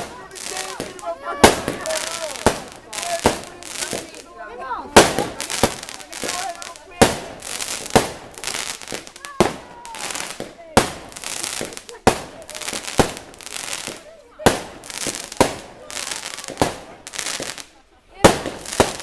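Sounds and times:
fireworks bursting: 0.0 - 19.0
fireworks crackling: 0.0 - 19.0
onlookers' voices: 0.0 - 19.0.

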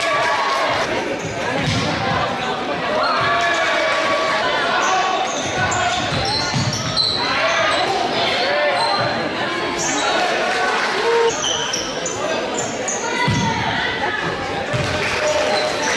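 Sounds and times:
indistinct shouts echoing: 2.9 - 11.9
basketball bouncing: 14.7 - 15.0.

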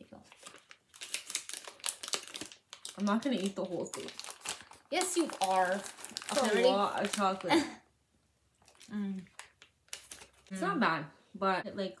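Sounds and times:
foil wrapper crinkling: 0.3 - 7.7, 8.6 - 10.5.

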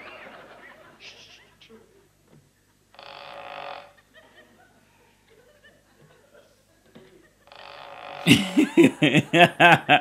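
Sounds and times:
studio audience laughing: 0.0 - 1.8, 8.3 - 10.0.

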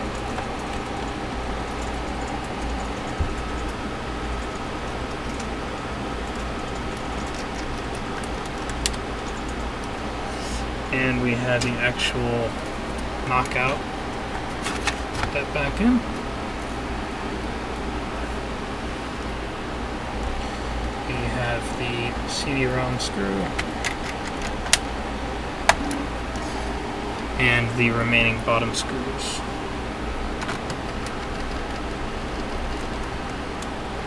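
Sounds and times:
low hum: 0.0 - 34.0.

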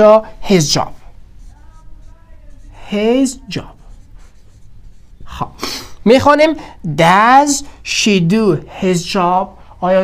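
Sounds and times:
man's sharp breath in: 5.6 - 6.0.

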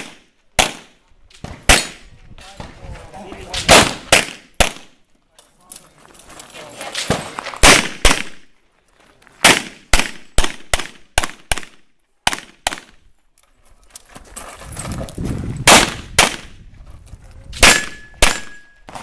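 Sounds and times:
pistol shots in rapid pairs: 0.0 - 1.0, 1.7 - 2.0, 3.6 - 5.0, 7.0 - 8.5, 9.4 - 13.0, 15.7 - 16.5, 17.6 - 19.0.

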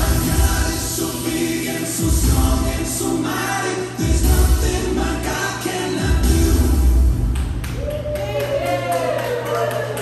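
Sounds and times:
group singing gospel song: 0.0 - 7.0
instrumental backing with bass: 0.0 - 7.8.

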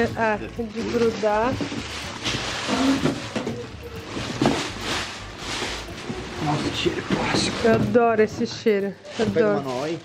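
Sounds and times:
plastic packaging crinkling: 0.0 - 8.3
cardboard box scraping: 0.7 - 8.4.

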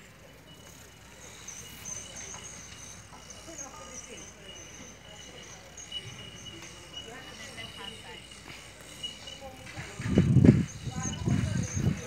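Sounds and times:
faint distant voices: 0.0 - 12.0
high-pitched chirping: 0.4 - 12.0.

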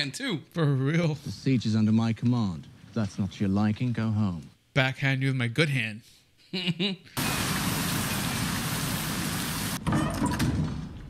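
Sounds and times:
waterfall rushing: 7.2 - 9.8.

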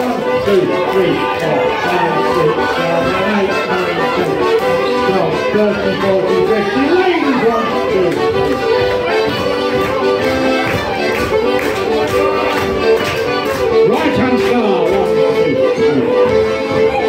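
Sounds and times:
fiddle and melodeon dance tune: 0.0 - 17.0.

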